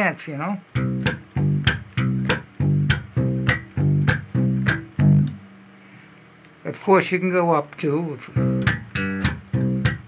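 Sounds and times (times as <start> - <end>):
electric bass guitar clipped notes: 0.7 - 5.5, 8.3 - 10.0
percussive slap clicks: 0.8 - 5.4, 8.6 - 10.0.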